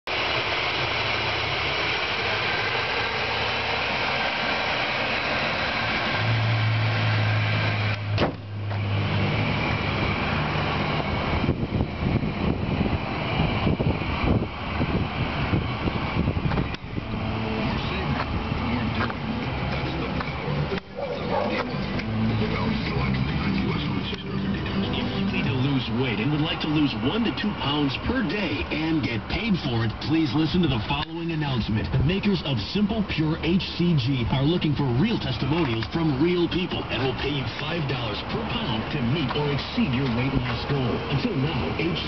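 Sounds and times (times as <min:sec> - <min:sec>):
car engine idling: 0:00.1 - 0:42.0.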